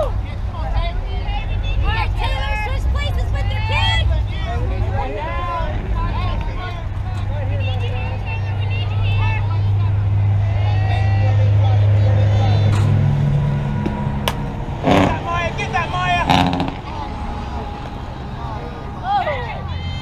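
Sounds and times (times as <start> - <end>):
low engine hum: 0.0 - 20.0
voices calling out: 0.0 - 20.0
spectators shouting and cheering: 1.0 - 20.0
bat hitting softball: 13.8 - 14.5.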